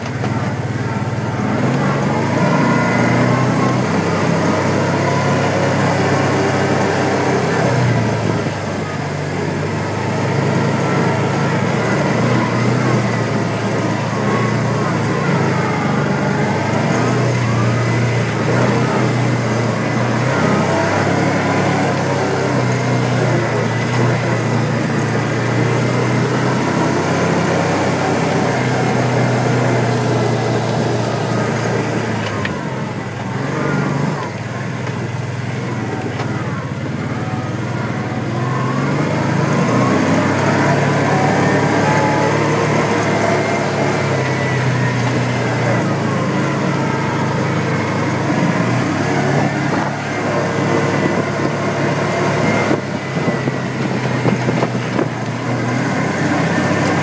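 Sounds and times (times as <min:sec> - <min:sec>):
off-road vehicle engine under load: 0:00.0 - 0:57.0.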